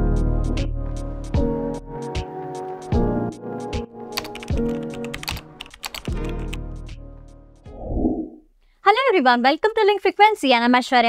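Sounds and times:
keyboard typing clicks: 0:04.2 - 0:06.6.

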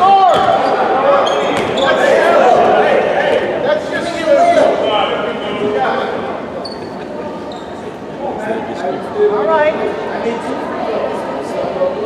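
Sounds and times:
spectators' voices: 0:00.0 - 0:12.0.

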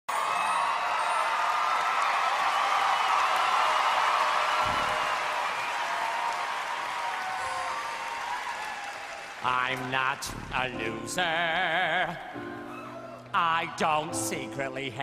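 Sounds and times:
audience applauding and cheering: 0:00.1 - 0:12.0, 0:12.6 - 0:14.1.

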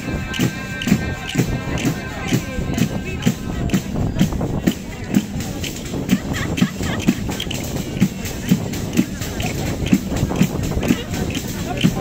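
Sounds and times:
frame drum with jingles beating: 0:00.0 - 0:12.0.

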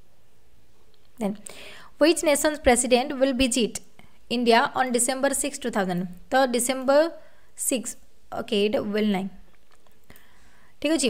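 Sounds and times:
room hiss: 0:00.0 - 0:11.0
breathy sound: 0:01.4 - 0:02.0.

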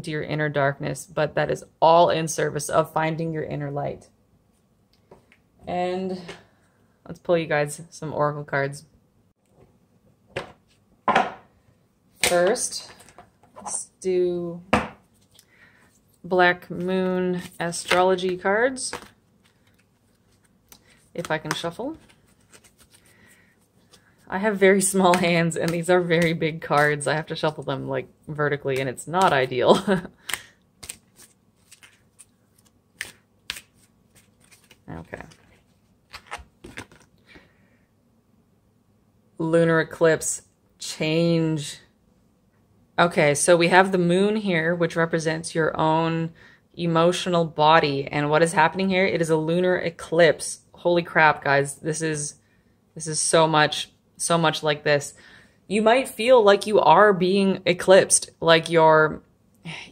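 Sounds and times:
cards knocking on tabletop: 0:10.3 - 0:11.5
cards being shuffled: 0:16.7 - 0:27.6, 0:30.2 - 0:37.2.

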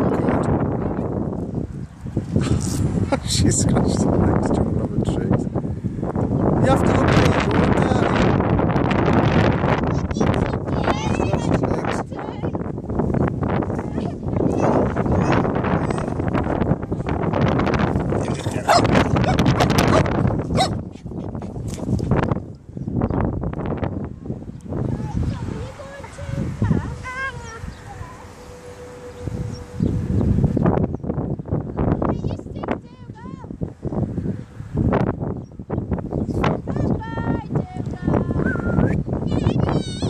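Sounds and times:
wind buffeting microphone: 0:00.0 - 0:40.0.

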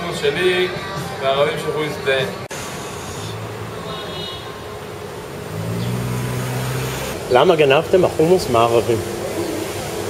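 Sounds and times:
street traffic noise: 0:00.0 - 0:10.0
vehicle engine hum: 0:02.5 - 0:10.0.

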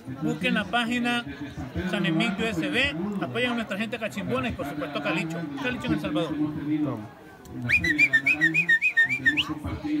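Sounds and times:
high whistling: 0:07.7 - 0:09.5.

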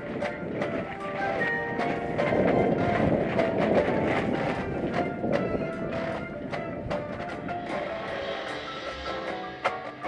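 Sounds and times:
marching drums and cymbals: 0:06.0 - 0:10.0
marimbas and vibraphones: 0:07.5 - 0:10.0.

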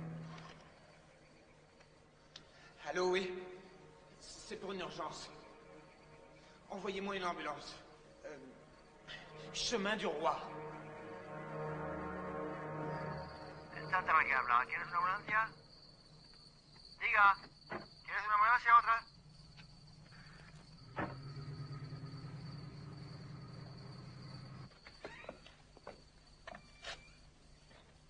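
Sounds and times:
low steady hum: 0:00.0 - 0:16.7
faint clicks: 0:01.8 - 0:02.6.

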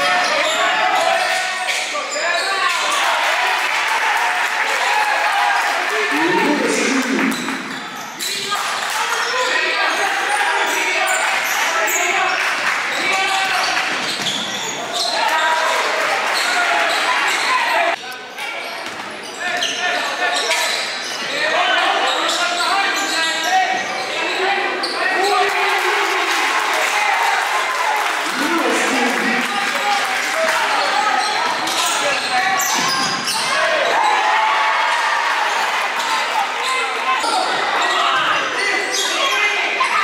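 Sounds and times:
echoing voices: 0:06.0 - 0:08.5, 0:28.0 - 0:31.2.

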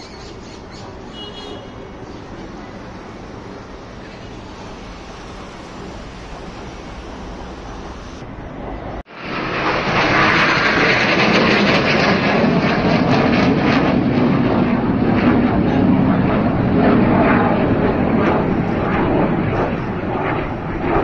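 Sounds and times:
jet aircraft flying overhead: 0:00.0 - 0:21.0.

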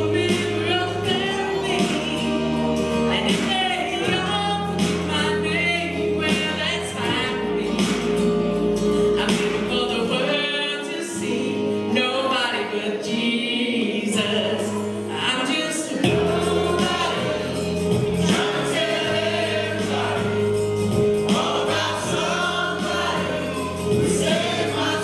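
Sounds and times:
bass line: 0:00.0 - 0:10.1, 0:16.0 - 0:25.0
group singing gospel song: 0:00.0 - 0:25.0
held accompaniment notes: 0:16.0 - 0:25.0.

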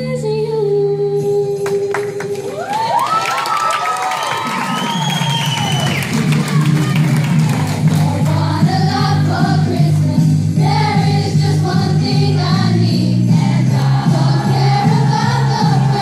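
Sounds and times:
audience cheering and whooping: 0:02.4 - 0:07.9
school band playing: 0:04.4 - 0:16.0
choir singing: 0:07.9 - 0:16.0.

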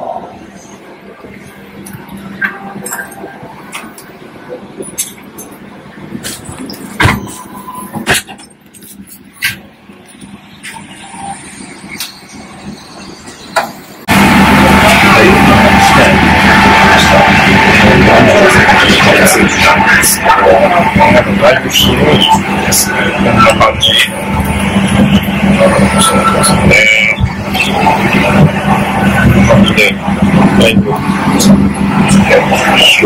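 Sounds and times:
faint steady cabin hum: 0:00.0 - 0:33.0
loud dense steady noise: 0:00.0 - 0:33.0.

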